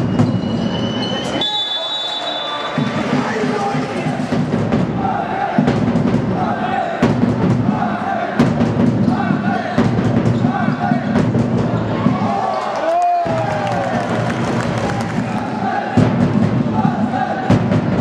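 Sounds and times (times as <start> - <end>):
spectators chanting: 2.1 - 12.6, 13.4 - 17.9.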